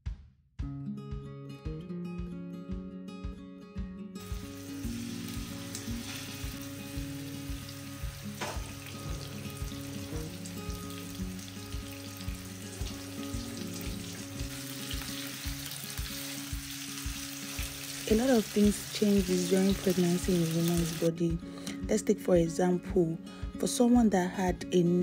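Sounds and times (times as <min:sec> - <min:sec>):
music with low beat: 0:00.1 - 0:24.9
food sizzling in a pan: 0:04.2 - 0:21.2.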